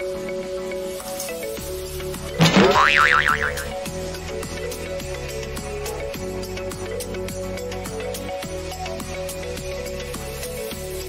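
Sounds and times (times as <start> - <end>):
cartoon boing sound effect: 2.4 - 3.8
background music: 2.4 - 6.2.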